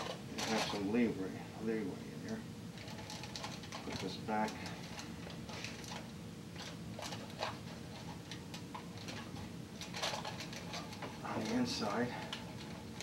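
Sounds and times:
aluminium foil crinkling and scraping: 0.0s - 0.9s, 2.8s - 13.0s.

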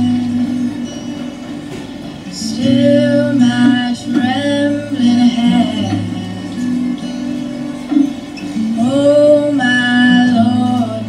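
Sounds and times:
young woman singing: 0.0s - 1.3s, 2.2s - 7.2s, 8.6s - 11.0s
acoustic guitar: 0.0s - 11.0s.

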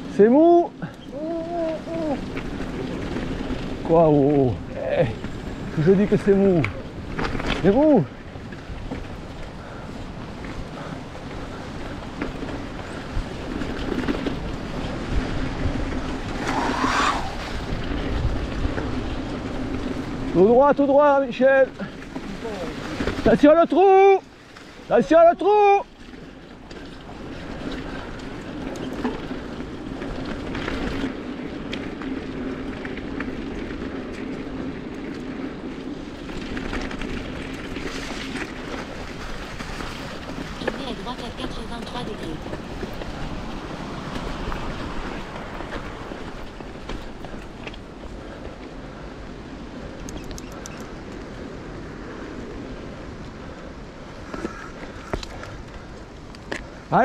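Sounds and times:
bike tyre rolling noise: 0.0s - 57.0s
bike clicks and rattles: 0.8s - 17.0s, 17.6s - 20.5s, 26.0s - 40.8s, 41.8s - 53.0s, 54.1s - 56.8s
wind on microphone: 0.9s - 5.8s, 6.4s - 20.4s.

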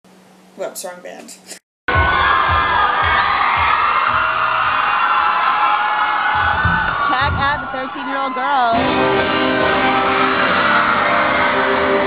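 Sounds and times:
loud distorted live band music: 8.7s - 12.0s.

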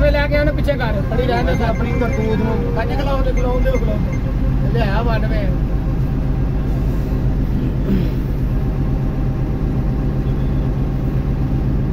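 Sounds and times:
bus engine droning: 0.0s - 11.9s.

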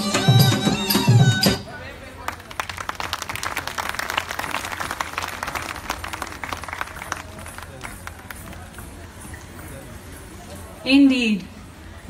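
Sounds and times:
audience clapping: 2.2s - 9.0s.

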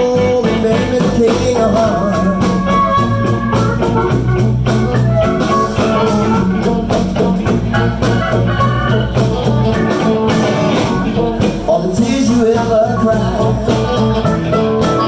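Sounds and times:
harmonica: 0.0s - 11.5s, 12.1s - 15.0s
electric blues band playing: 0.0s - 15.0s.

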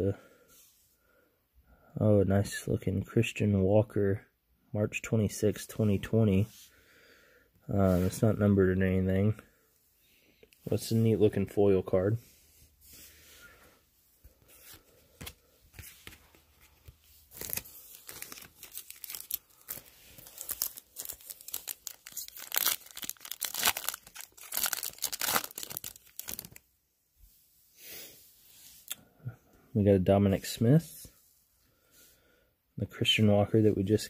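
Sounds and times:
wrapper tearing and crinkling: 17.3s - 26.6s.

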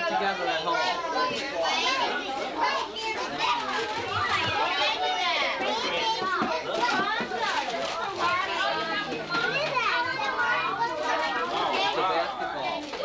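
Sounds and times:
children chattering and calling: 0.0s - 13.0s.

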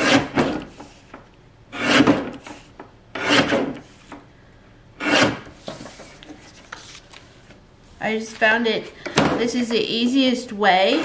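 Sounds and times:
paper cutter blade shearing paper: 1.7s - 4.2s, 5.0s - 6.0s.

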